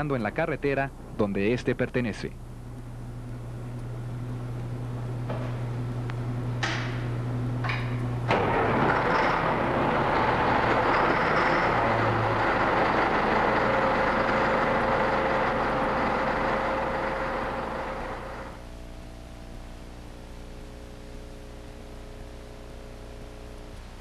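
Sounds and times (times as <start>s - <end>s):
diesel engine running: 8.3s - 18.7s.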